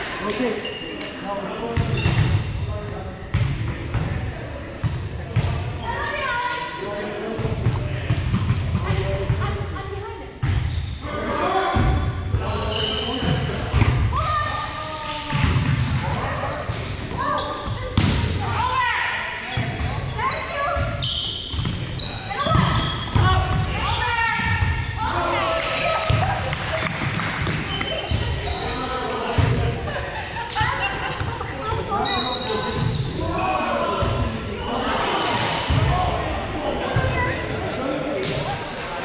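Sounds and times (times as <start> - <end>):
players calling out and chatting: 0.0 - 39.0.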